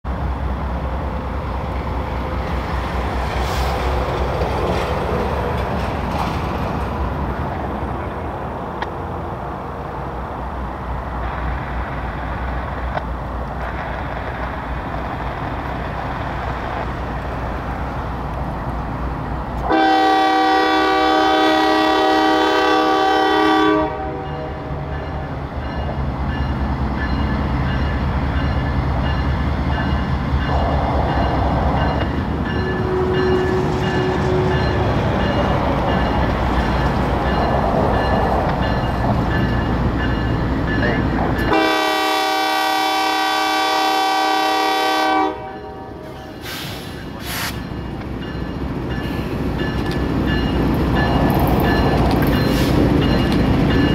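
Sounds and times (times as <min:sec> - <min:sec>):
diesel locomotives rumbling: 0:00.0 - 0:53.9
diesel locomotive horn blasts: 0:19.6 - 0:24.8, 0:41.4 - 0:46.1.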